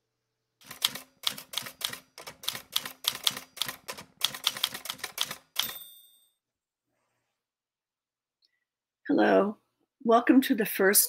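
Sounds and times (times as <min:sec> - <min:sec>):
typewriter key strikes: 0:00.6 - 0:06.0
typewriter carriage return bell: 0:00.6 - 0:06.4.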